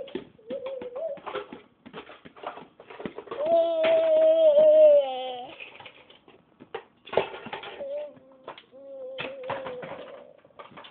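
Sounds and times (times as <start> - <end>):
toddler cooing: 3.3 - 5.6, 7.7 - 10.2.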